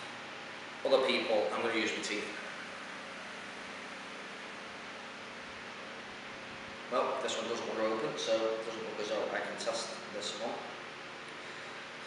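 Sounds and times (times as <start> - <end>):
room tone hiss: 0.0 - 12.0.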